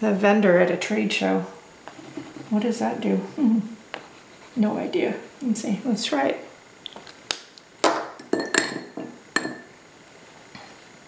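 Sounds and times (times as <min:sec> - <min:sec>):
glassy clinks and knocks on table: 0:08.2 - 0:09.7.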